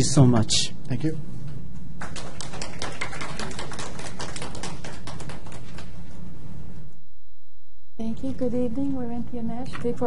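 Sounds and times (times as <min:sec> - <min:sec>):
steady low hum: 0:00.0 - 0:10.0
people clapping: 0:02.0 - 0:06.0.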